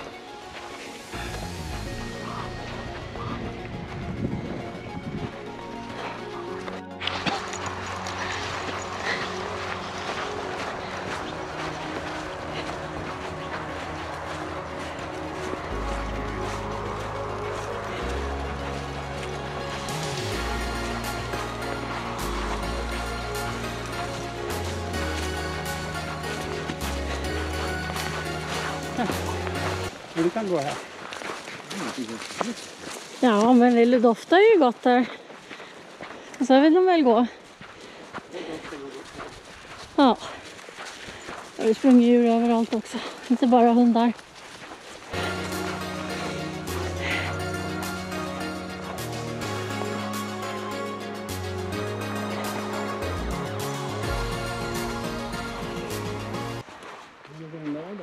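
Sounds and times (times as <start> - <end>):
background music: 0.0 - 30.8, 45.1 - 56.7
deep bass line: 13.2 - 29.9, 45.2 - 56.6.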